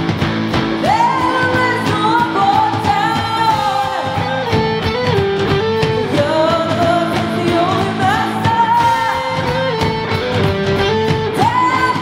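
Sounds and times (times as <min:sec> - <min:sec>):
hard rock band playing: 0:00.0 - 0:12.0.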